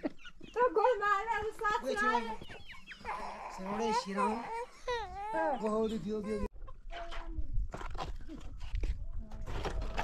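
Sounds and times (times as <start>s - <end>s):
chickens clucking: 0.0s - 4.6s.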